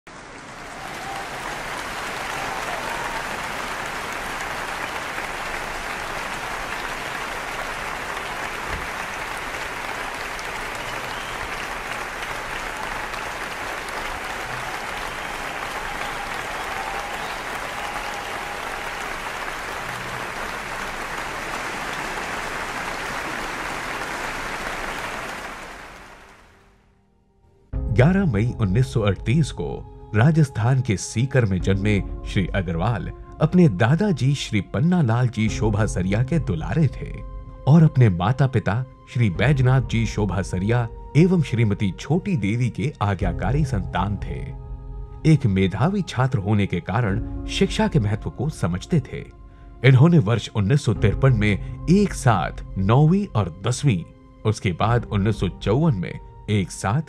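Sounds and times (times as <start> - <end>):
audience applauding: 0.1 - 26.7.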